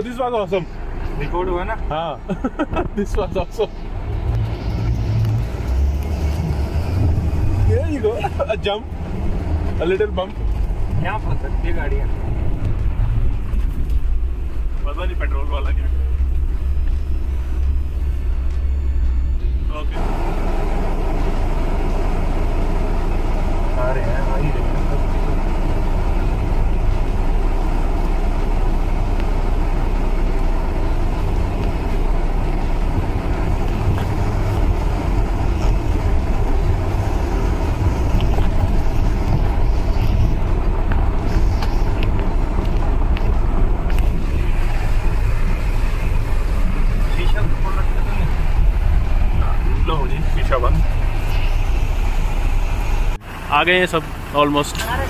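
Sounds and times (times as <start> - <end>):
engine and drivetrain rumble: 0.0 - 55.0.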